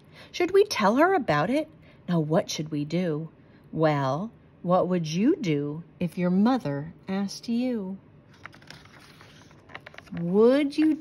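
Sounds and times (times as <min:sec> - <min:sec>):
book page turning: 0:08.3 - 0:11.0.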